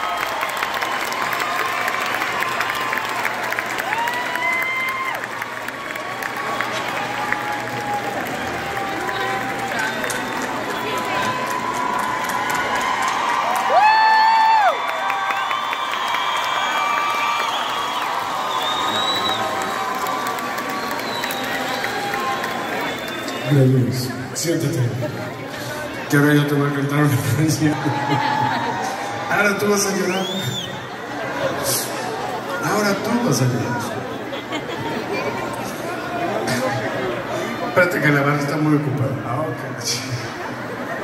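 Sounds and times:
crowd cheering and clapping: 0.0s - 37.3s.

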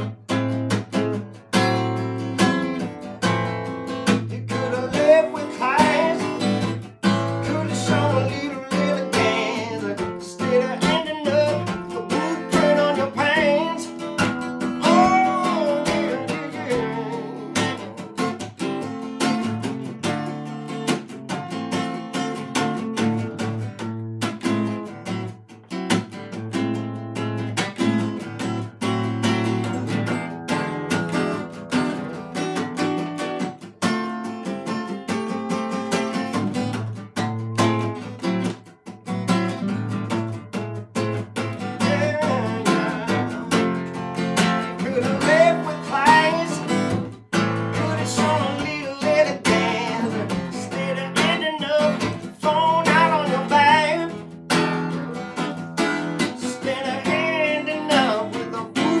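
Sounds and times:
acoustic guitar playing blues: 0.0s - 59.0s
person singing: 4.2s - 18.4s, 41.4s - 54.2s, 56.2s - 59.0s.

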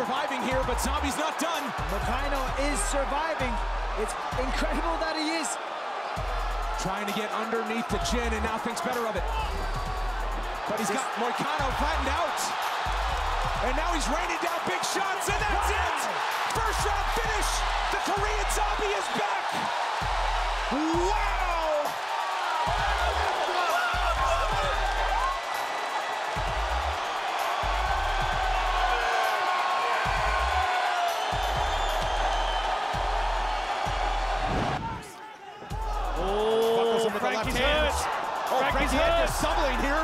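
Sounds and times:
crowd cheering and shouting: 0.0s - 40.0s
music with steady bass beat: 0.4s - 5.0s, 6.2s - 7.0s, 7.9s - 10.8s, 11.6s - 14.6s, 15.2s - 19.2s, 19.9s - 25.6s, 26.3s - 29.2s, 30.1s - 34.8s, 35.7s - 36.6s, 37.4s - 40.0s.

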